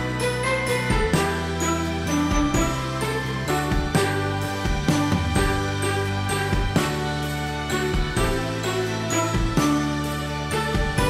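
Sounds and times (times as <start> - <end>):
music with sustained chords: 0.0 - 11.0.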